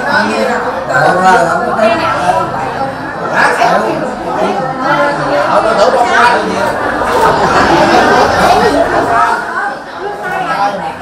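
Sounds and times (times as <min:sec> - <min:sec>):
indoor chatter of people: 0:00.0 - 0:11.0.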